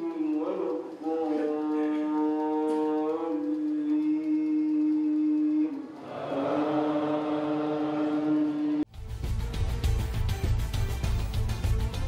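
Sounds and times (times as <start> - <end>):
man chanting: 0.0 - 8.8.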